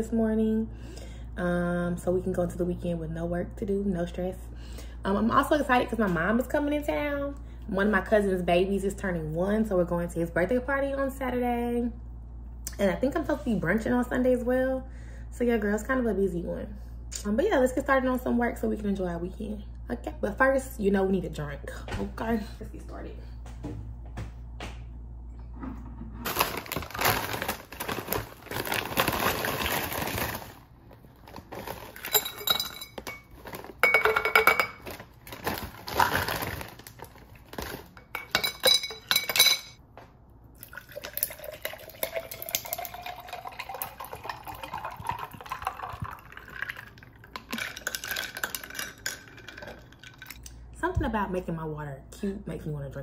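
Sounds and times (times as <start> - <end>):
glass clinks: 38.2 - 39.8
water pouring into jar: 40.6 - 50.4.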